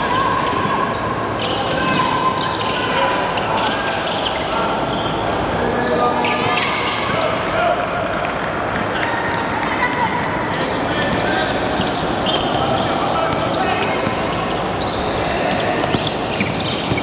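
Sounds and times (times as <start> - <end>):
sharp shoe and ball impacts: 15.4 - 17.0.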